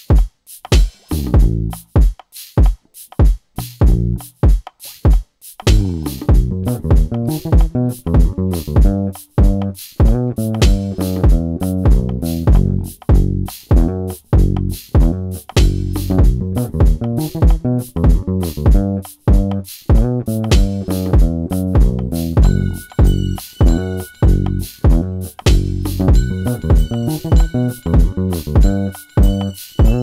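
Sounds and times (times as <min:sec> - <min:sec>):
backing track with drum beat: 0:00.0 - 0:30.0
funky electric bass line: 0:01.1 - 0:01.9, 0:03.6 - 0:04.4, 0:05.6 - 0:30.0.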